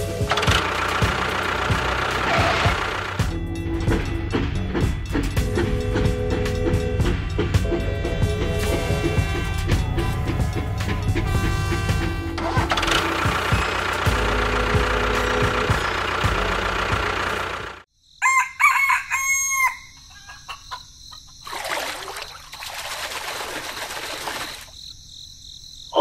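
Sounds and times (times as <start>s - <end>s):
rooster crowing: 18.2s - 20.8s.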